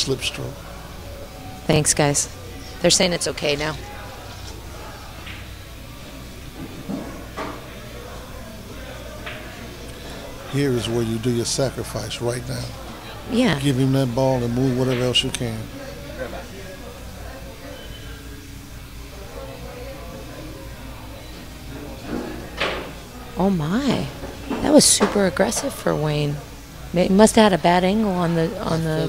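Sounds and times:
faint background music: 0:00.0 - 0:29.0.

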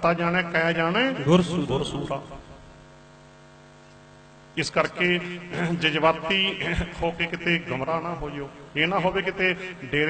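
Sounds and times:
person's voice: 0:00.0 - 0:02.4, 0:04.6 - 0:10.0
electrical hum from sound system: 0:00.0 - 0:10.0.

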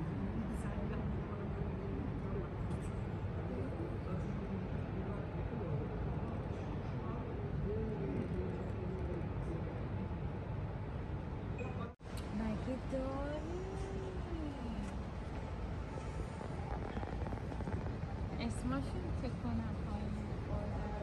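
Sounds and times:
distant indistinct voices: 0:00.0 - 0:21.0
low hum of hall: 0:00.0 - 0:21.0.

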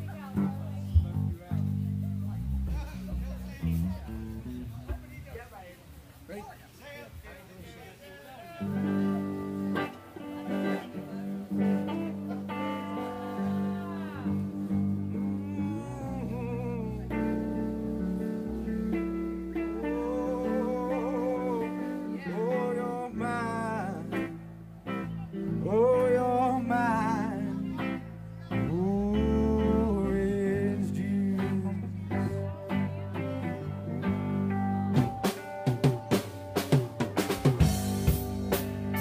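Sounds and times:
bending electric guitar lines: 0:00.0 - 0:05.4, 0:08.6 - 0:39.0
live rock band playing: 0:08.6 - 0:39.0.

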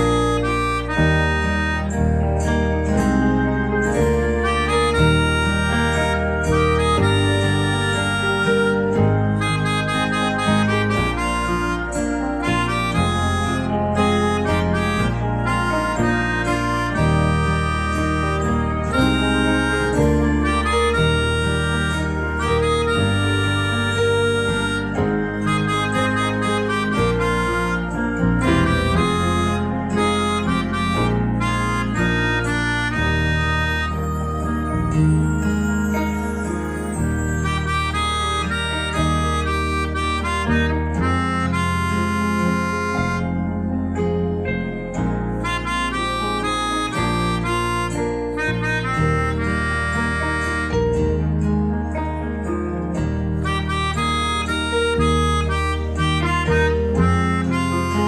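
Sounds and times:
low bass line accompaniment: 0:00.0 - 0:58.0
melodica melody: 0:00.0 - 0:58.0.

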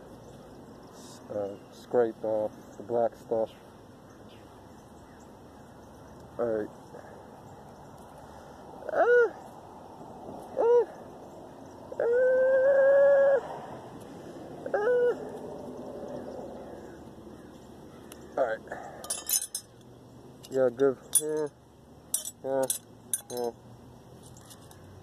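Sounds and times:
light metal clinks: 0:19.0 - 0:23.6, 0:24.2 - 0:25.0.

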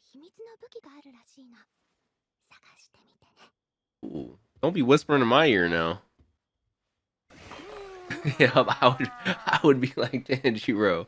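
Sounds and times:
person speaking: 0:07.6 - 0:10.8.

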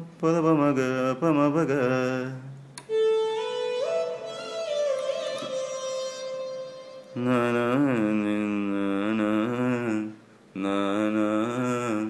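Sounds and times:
electronic keyboard low melody: 0:02.9 - 0:07.1.

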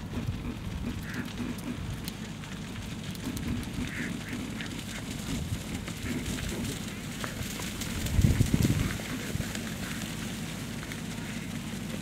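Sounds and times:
faint crackle: 0:00.0 - 0:12.0
wind buffeting microphone: 0:05.1 - 0:06.8, 0:07.4 - 0:09.6.

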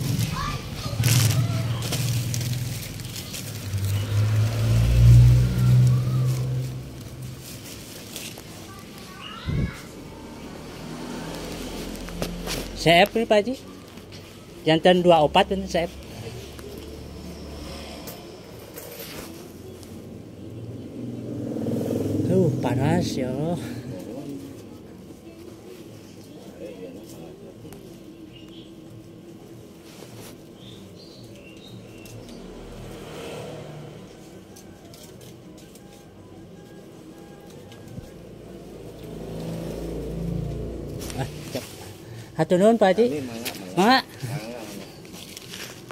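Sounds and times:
vehicle engine passing by: 0:00.0 - 0:13.5, 0:15.2 - 0:27.3, 0:31.6 - 0:35.7, 0:36.6 - 0:45.9.

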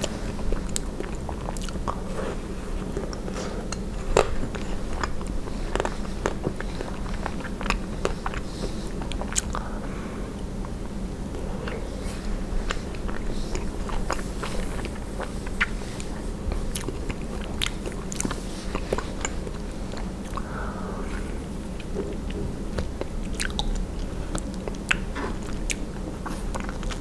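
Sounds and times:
biting and chewing ice cream bar: 0:00.0 - 0:09.8, 0:10.4 - 0:20.5, 0:21.7 - 0:27.0.

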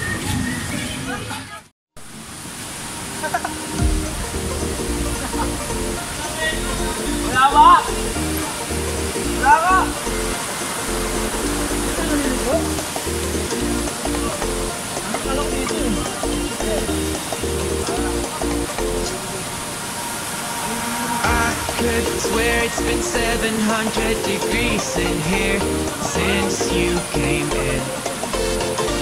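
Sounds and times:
music with pulsing bass: 0:03.8 - 0:19.2, 0:21.3 - 0:29.0
person singing: 0:10.9 - 0:19.3, 0:21.2 - 0:29.0.

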